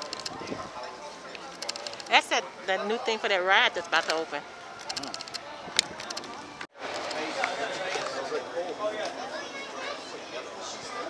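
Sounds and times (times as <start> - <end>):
crowd talking: 0.0 - 11.0
sharp clicks: 1.4 - 2.2, 4.8 - 6.4.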